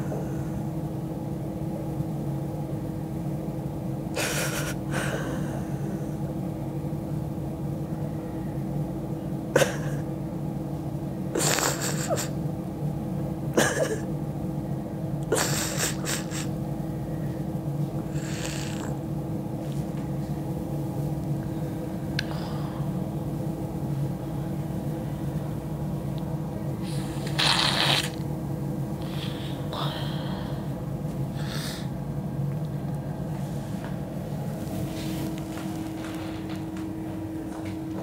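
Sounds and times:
woman sniffing: 0:04.2 - 0:05.6, 0:15.4 - 0:16.5, 0:18.1 - 0:18.9, 0:26.8 - 0:28.2, 0:29.0 - 0:30.5, 0:31.4 - 0:31.9
low hum: 0:16.0 - 0:38.0.

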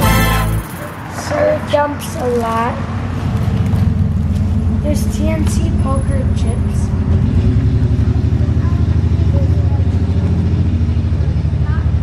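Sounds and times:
engine running with low hum: 0:00.0 - 0:12.0.

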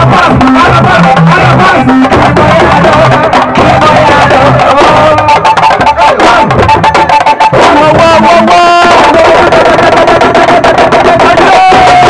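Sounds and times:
long held melody line: 0:00.0 - 0:09.3
rapid dense drumming: 0:00.0 - 0:12.0.

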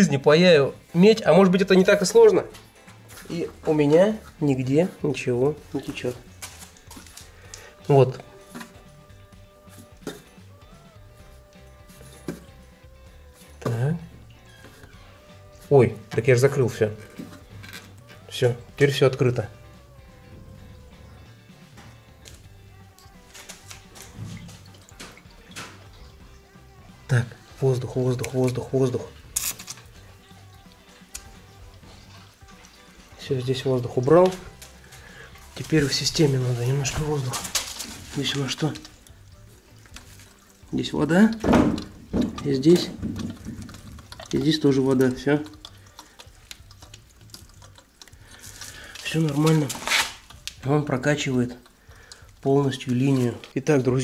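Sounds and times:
water hissing and gurgling in pipes: 0:23.8 - 0:27.5, 0:38.1 - 0:53.5.

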